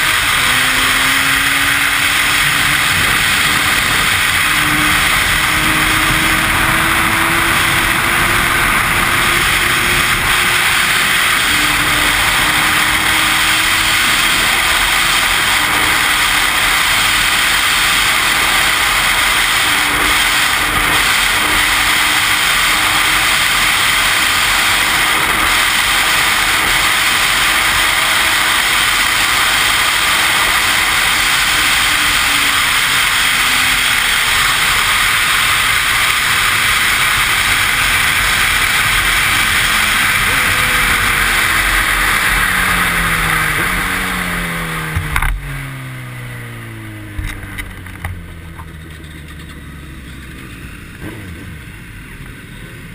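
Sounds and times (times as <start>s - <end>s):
wind rush on microphone: 0.0s - 45.8s
motorcycle engine: 0.0s - 52.9s.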